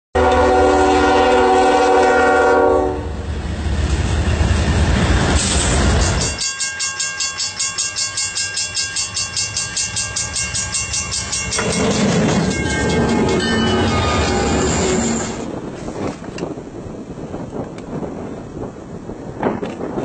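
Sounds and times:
train running: 0:00.2 - 0:20.0
railway crossing bell ringing: 0:05.9 - 0:15.4.

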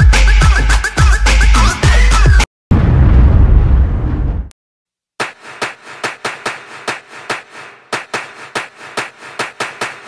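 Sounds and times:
deep boom: 0:02.7 - 0:04.5.

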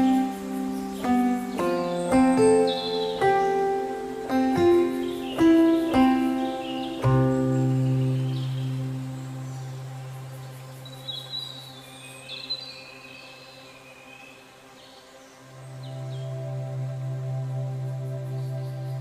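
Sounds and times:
soft new-age music: 0:00.0 - 0:19.0.

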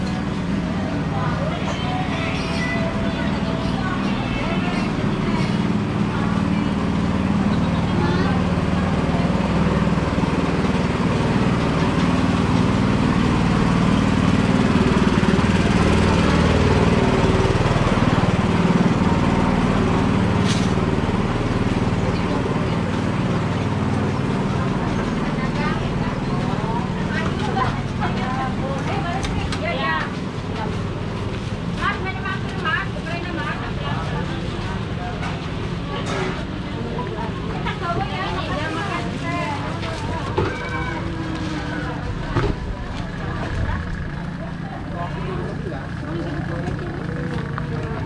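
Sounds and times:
people talking: 0:00.0 - 0:48.0.

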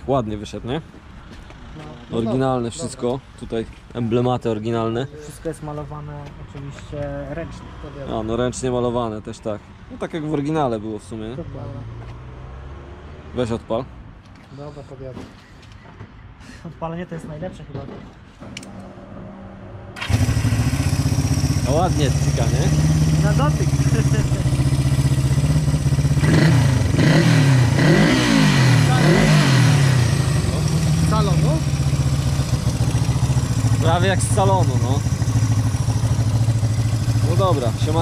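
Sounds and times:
motorcycle engine starting and running: 0:19.6 - 0:38.0.

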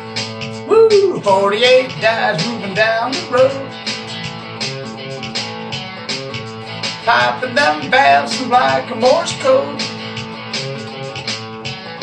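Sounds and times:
electric guitar strumming: 0:00.0 - 0:12.0.

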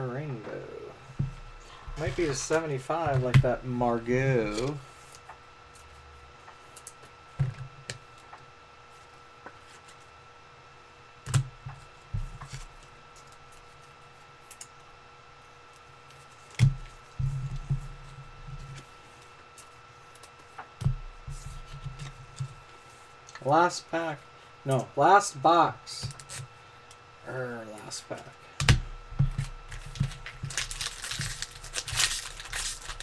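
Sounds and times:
faint high hum: 0:00.0 - 0:33.0
card packs handled on a table: 0:29.2 - 0:33.0.

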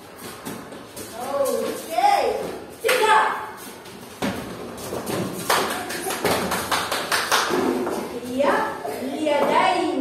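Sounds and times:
children's footsteps: 0:00.0 - 0:09.8.

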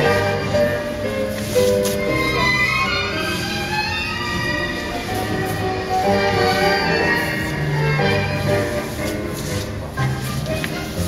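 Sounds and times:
tango music: 0:00.0 - 0:11.0.

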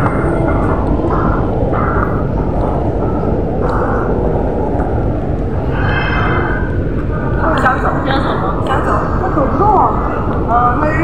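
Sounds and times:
loud steady rumbling: 0:00.0 - 0:11.0.

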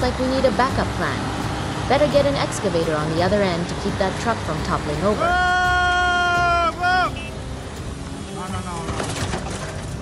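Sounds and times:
diesel engines rumbling: 0:00.0 - 0:10.0
person yelling: 0:05.2 - 0:07.2.

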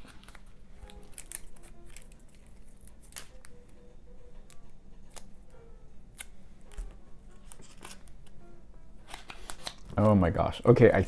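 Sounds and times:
paper rustling: 0:00.0 - 0:03.4, 0:06.7 - 0:08.2
faint background music: 0:00.0 - 0:11.0.

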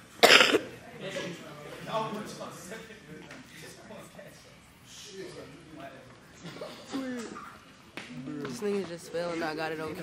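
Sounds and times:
loud cough: 0:00.2 - 0:00.7.

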